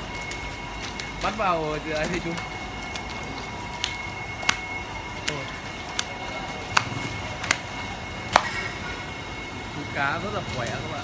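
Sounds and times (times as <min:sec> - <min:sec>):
fish slapping wet concrete: 0:00.0 - 0:08.9.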